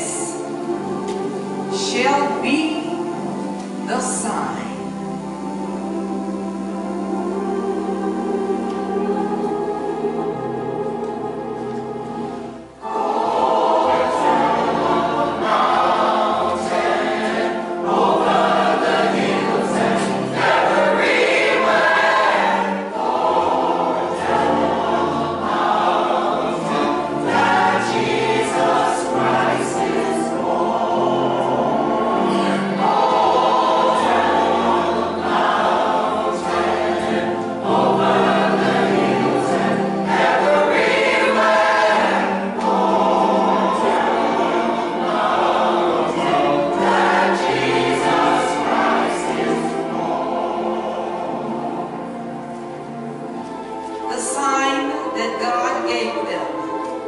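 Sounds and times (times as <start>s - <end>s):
choir singing a gospel hymn: 0.0s - 57.0s.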